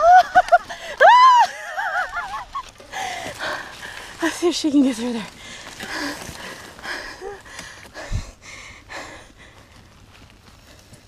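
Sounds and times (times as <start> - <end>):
person whooping: 0.0 - 1.9
person squealing and giggling: 0.0 - 2.6.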